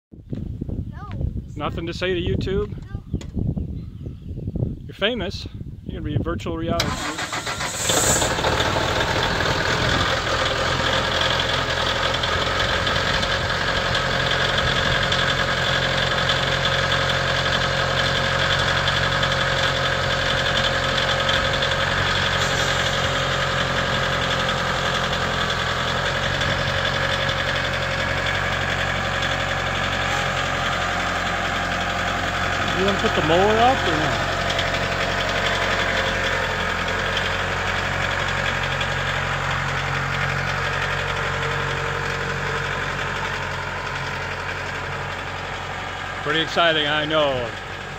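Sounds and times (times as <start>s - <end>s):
tractor diesel engine idling: 6.6s - 47.9s.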